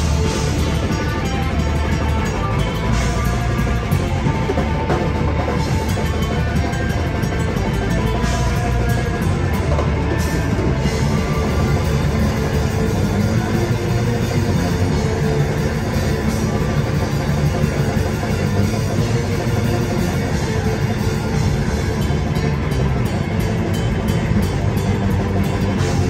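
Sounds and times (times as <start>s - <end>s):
metal band playing live: 0.0s - 26.0s.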